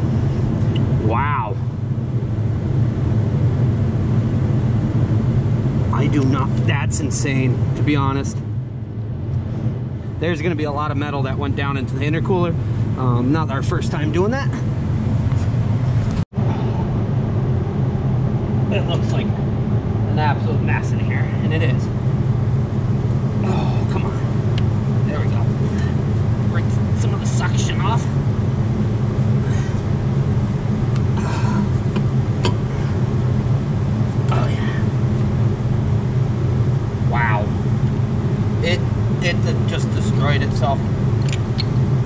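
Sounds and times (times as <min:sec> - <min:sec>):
low mechanical hum: 0:00.0 - 0:42.0
person muttering: 0:23.4 - 0:24.2, 0:31.1 - 0:32.8, 0:34.3 - 0:34.9.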